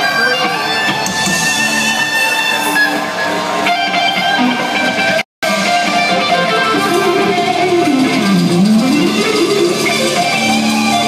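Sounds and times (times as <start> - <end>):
electric guitars: 0.0 - 11.0
rock band playing live: 0.0 - 11.0.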